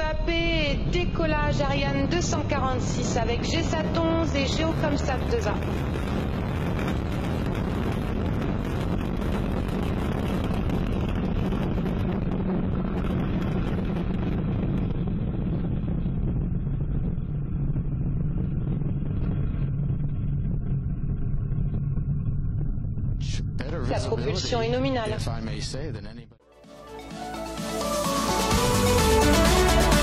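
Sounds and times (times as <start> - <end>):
rocket engine low rumble: 0.0 - 26.1
rocket exhaust hiss: 3.5 - 19.6.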